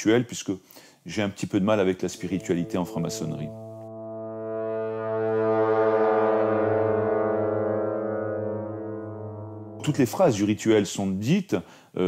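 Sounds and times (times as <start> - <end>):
man speaking: 1.1 - 3.6, 9.8 - 12.0
low sustained drone note: 2.1 - 10.7.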